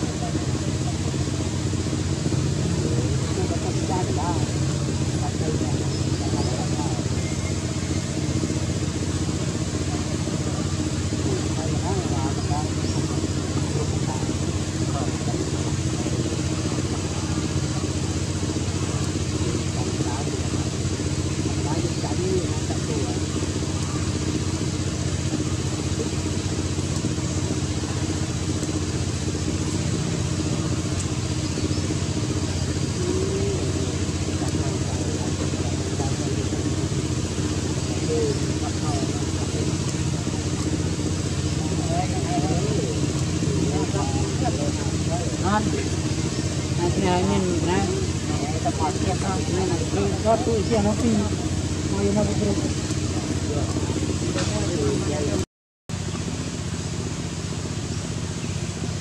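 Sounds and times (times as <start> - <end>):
faint voices: 0.0 - 55.5
low engine drone: 0.0 - 59.0.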